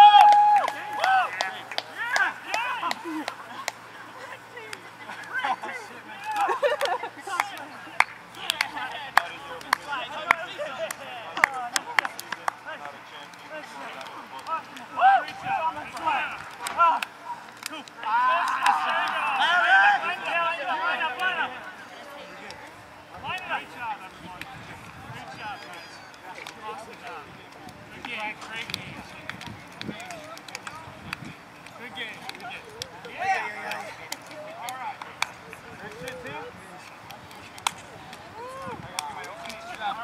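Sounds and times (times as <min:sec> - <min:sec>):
hand claps: 0:00.0 - 0:03.8, 0:06.3 - 0:13.0, 0:27.6 - 0:36.2
distant voices of players: 0:00.0 - 0:40.0
voices shouting together: 0:18.0 - 0:21.6.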